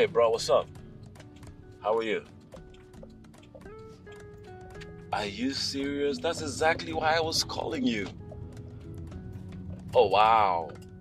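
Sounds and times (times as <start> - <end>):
soft film score: 0.0 - 11.0.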